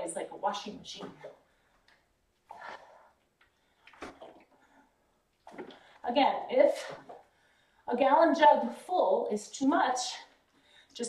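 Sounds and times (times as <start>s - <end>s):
water sloshing in plastic jug: 3.8s - 4.6s, 5.4s - 6.0s.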